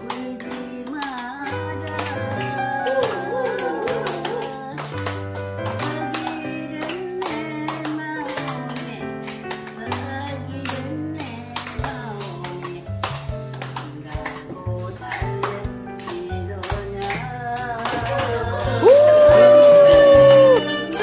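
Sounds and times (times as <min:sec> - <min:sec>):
people clapping along: 0:00.0 - 0:21.0
upbeat harmonica music: 0:18.5 - 0:21.0.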